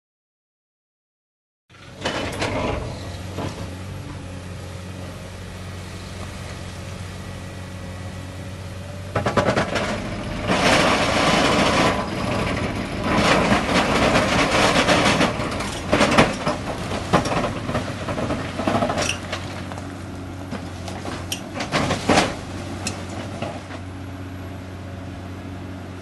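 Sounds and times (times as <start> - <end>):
excavator engine humming: 1.7 - 26.0.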